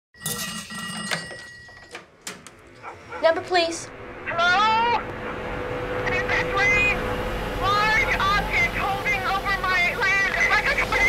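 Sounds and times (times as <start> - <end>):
steady high ringing tone: 0.2 - 2.0
pulsing buzz: 3.8 - 11.0.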